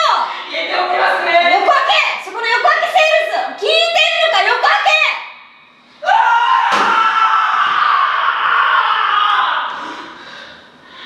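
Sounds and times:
person screaming: 0:06.0 - 0:09.8.

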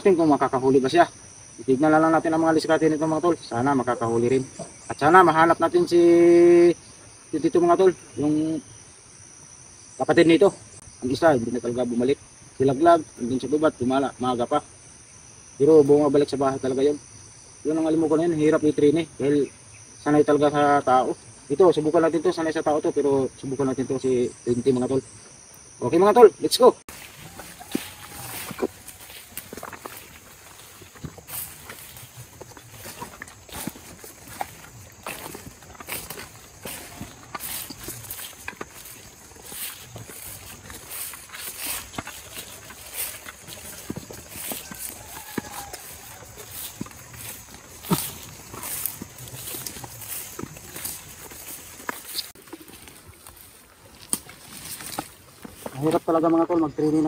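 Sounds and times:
crackles of brushed leaves: 0:00.0 - 0:09.3, 0:15.4 - 0:57.0
high insect buzz: 0:22.5 - 0:55.6
footsteps through grass: 0:26.9 - 0:57.0.

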